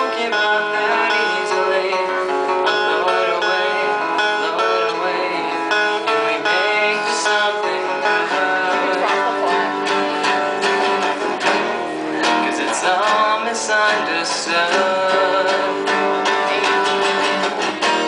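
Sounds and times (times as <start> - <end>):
acoustic guitars strumming: 0.0 - 18.0.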